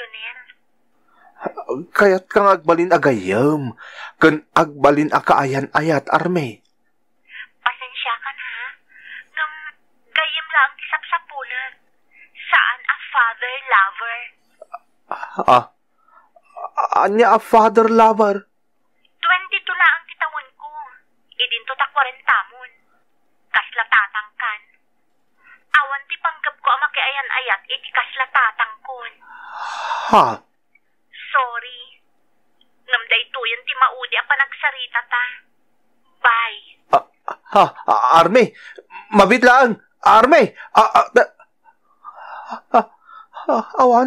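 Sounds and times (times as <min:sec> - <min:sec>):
breathy sound: 0:29.2 - 0:30.4, 0:41.9 - 0:43.6
person stammering: 0:29.4 - 0:30.4.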